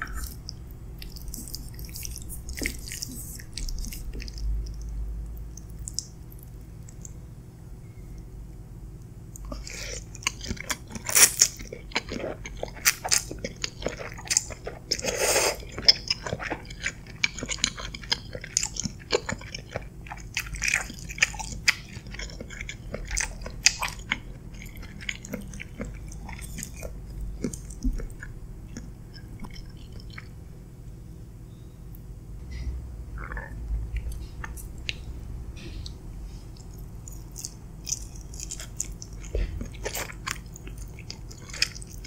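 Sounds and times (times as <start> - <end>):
wet chewing: 0.0 - 7.2, 9.3 - 30.4, 33.2 - 42.0
slurping noodles: 14.9 - 15.7.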